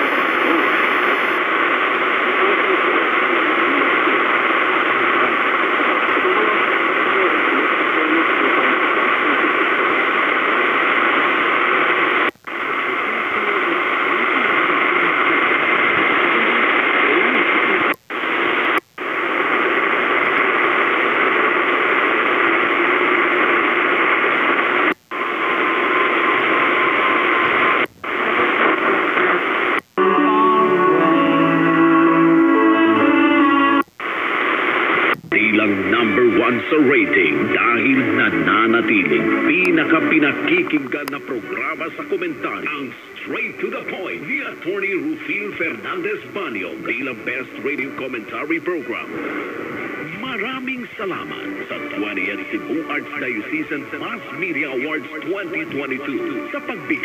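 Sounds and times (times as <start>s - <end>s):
faint radio speech: 0.0s - 24.8s, 26.0s - 29.8s, 34.2s - 57.0s
radio hiss and static: 0.0s - 57.0s.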